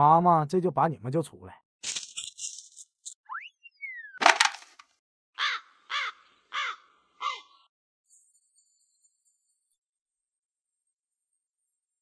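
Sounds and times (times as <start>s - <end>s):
crow cawing: 5.4s - 7.6s.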